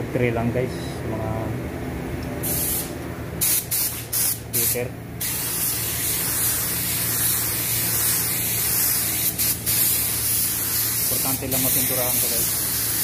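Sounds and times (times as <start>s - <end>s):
spray gun hissing: 2.4s - 13.0s.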